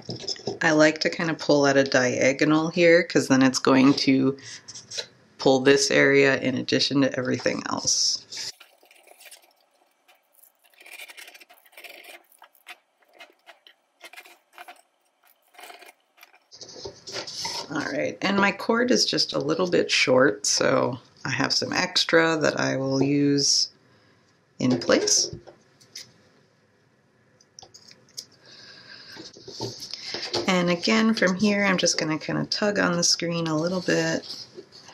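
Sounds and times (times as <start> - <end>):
mesh rustling and scraping: 8.3 - 17.8.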